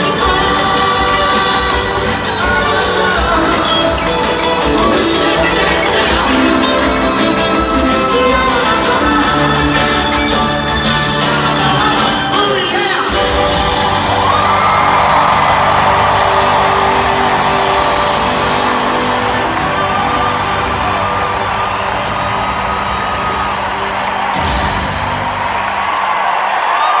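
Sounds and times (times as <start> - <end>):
crowd whooping and cheering: 0.0 - 27.0
live rock band with piano: 0.0 - 27.0.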